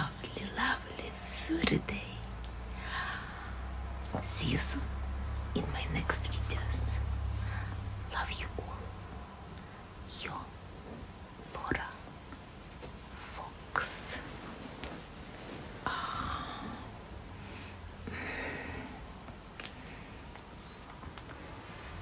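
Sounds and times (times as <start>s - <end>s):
woman whispering: 0.0s - 2.4s, 4.2s - 9.0s, 10.0s - 10.6s, 11.4s - 12.1s, 13.1s - 14.4s
low hum: 0.0s - 22.0s.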